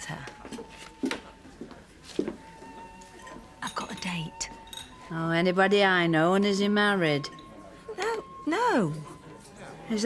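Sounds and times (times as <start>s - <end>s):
crockery and cutlery clinking: 0.0s - 5.5s, 7.0s - 9.9s.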